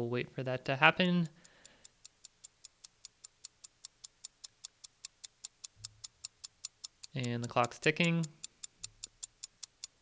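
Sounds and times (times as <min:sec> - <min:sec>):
clock ticking quickly: 0:01.0 - 0:10.0.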